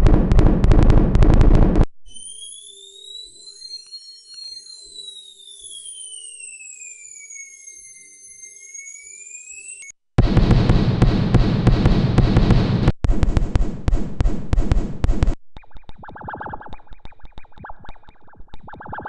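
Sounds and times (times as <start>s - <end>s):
synth machine-gun rattle: 0.0s - 1.8s, 4.8s - 19.0s
whistling sci-fi tones: 2.1s - 9.9s, 15.6s - 19.0s.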